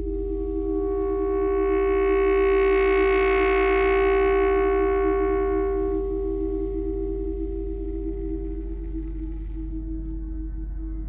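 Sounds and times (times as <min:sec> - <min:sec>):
saxophone long note: 0:00.0 - 0:08.6
steady low hum: 0:00.0 - 0:11.0
wavering electronic drone: 0:00.0 - 0:11.0.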